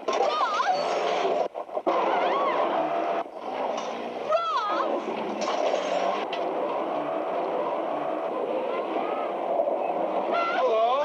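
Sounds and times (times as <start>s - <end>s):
car driving on dirt road: 0.9s - 11.0s
voices crying out: 7.9s - 11.0s.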